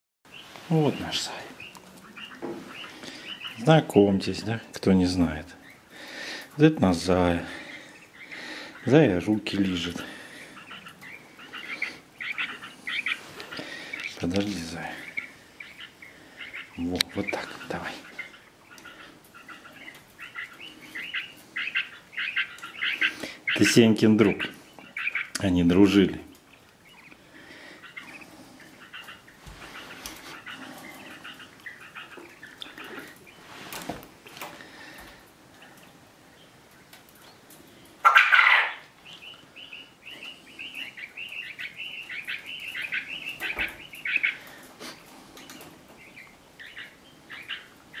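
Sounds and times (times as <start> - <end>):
small birds chirping: 0.3 - 48.0.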